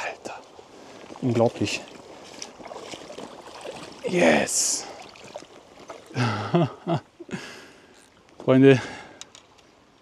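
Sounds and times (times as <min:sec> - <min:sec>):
stream flowing: 0:00.0 - 0:10.0
faint ticks: 0:09.0 - 0:09.7.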